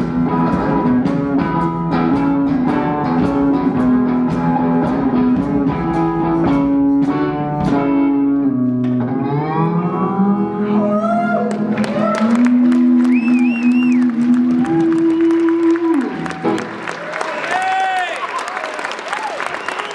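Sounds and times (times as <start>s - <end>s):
crowd applauding and cheering: 11.2s - 19.9s.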